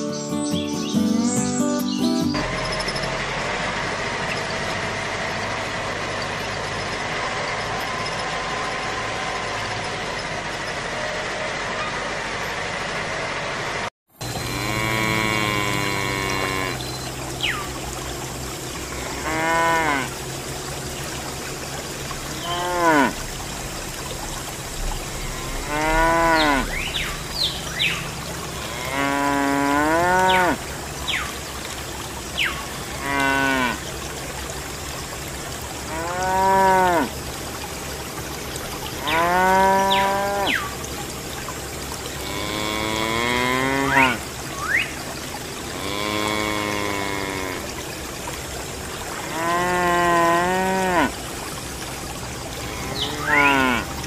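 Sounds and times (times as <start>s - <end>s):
mechanical drone: 2.4s - 20.8s, 21.6s - 29.0s
cattle mooing: 14.3s - 16.9s, 19.0s - 20.2s, 22.4s - 23.2s, 25.1s - 27.1s, 28.5s - 30.6s, 33.0s - 33.8s, 35.9s - 37.1s, 39.0s - 40.6s, 42.2s - 44.2s, 45.8s - 47.6s, 49.2s - 51.2s, 52.6s - 53.9s.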